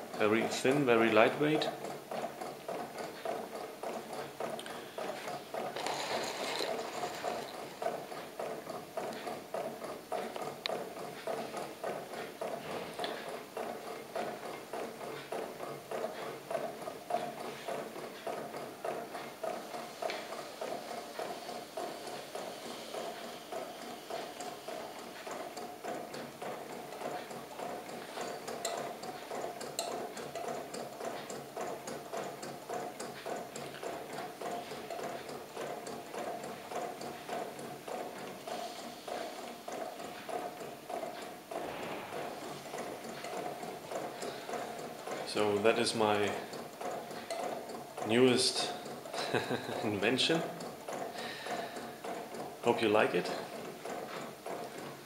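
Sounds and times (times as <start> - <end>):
stirling engine rhythmic clicking: 0.0 - 55.0.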